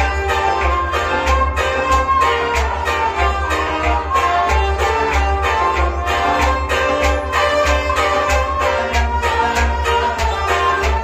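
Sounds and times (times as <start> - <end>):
harmonium: 0.0 - 11.0
plucked string instrument: 0.0 - 11.0
steady percussion beat: 0.0 - 11.0.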